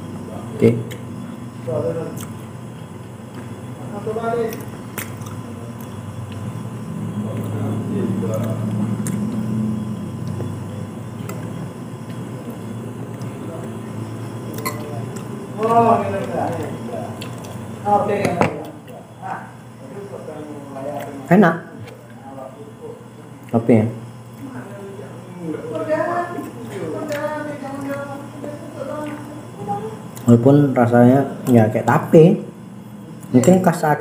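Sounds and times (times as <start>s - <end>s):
person chewing sticky food: 4.5s - 17.8s, 29.0s - 30.4s.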